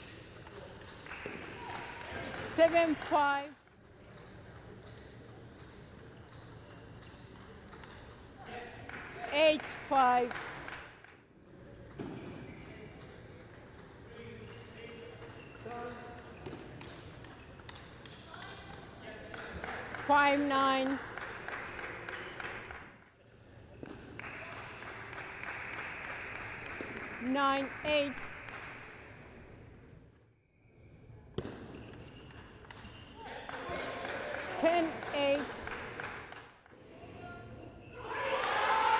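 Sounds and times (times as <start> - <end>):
voices in a hall: 0.0 - 31.7, 32.4 - 38.9
table tennis ball bouncing: 15.2 - 18.8, 31.4 - 33.8.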